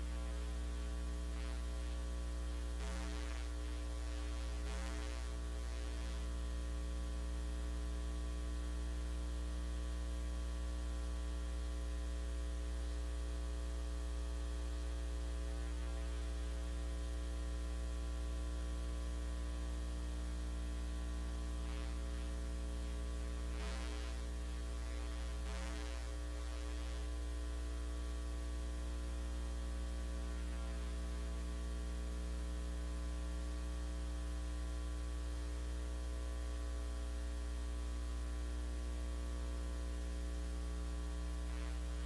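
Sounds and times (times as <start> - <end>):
electrical mains hum: 0.0 - 42.0.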